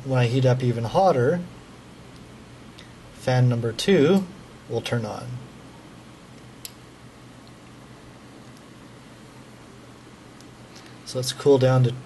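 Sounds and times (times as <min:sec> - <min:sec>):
cooling fans whirring: 0:00.0 - 0:12.0.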